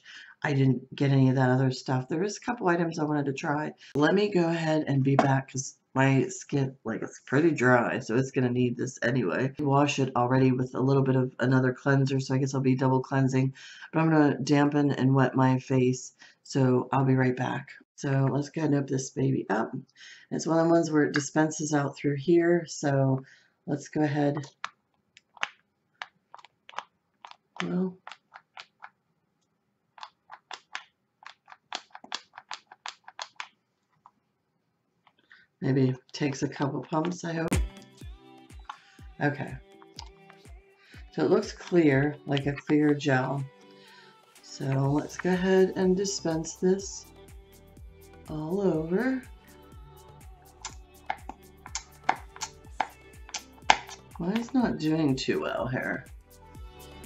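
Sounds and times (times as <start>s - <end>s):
soft background music with beat: 37.5s - 57.0s.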